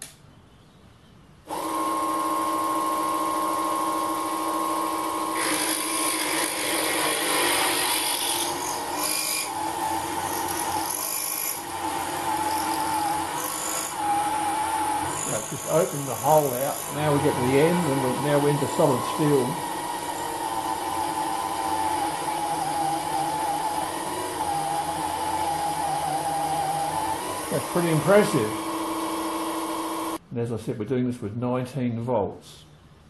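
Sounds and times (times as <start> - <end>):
drill grinding into steel: 1.5 - 30.2
electric motor whining: 1.5 - 30.2.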